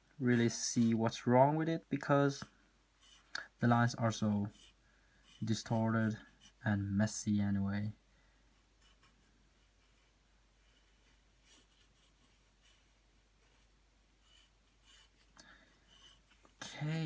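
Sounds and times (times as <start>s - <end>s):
pencil scratching on paper: 2.4s - 6.6s, 8.5s - 16.5s.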